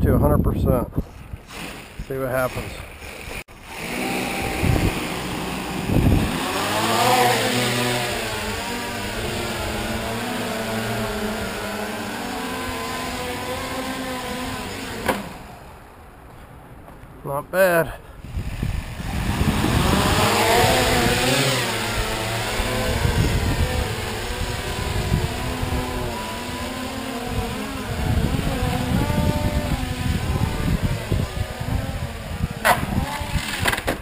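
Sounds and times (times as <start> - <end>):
wind rumbling on microphone: 0.0 - 3.0, 4.2 - 14.7, 18.2 - 34.0
quadcopter propellers whirring: 1.2 - 15.9, 18.2 - 34.0.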